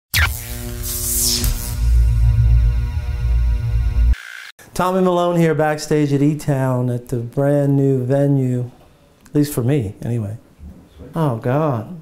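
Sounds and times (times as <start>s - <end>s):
intro theme music with bass: 0.1s - 4.2s.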